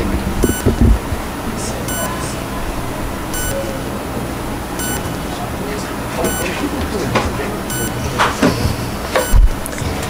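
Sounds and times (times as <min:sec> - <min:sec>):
low room hum: 0:00.0 - 0:10.0
high electronic beep: 0:00.4 - 0:00.8, 0:01.9 - 0:02.2, 0:03.3 - 0:03.7, 0:04.8 - 0:05.1, 0:06.2 - 0:06.5, 0:07.7 - 0:08.0, 0:09.2 - 0:09.5.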